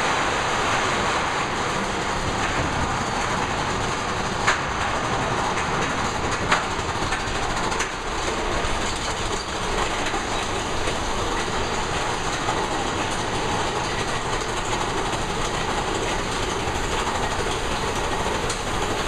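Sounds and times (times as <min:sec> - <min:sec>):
roller coaster rumble and clatter: 0:00.0 - 0:19.0.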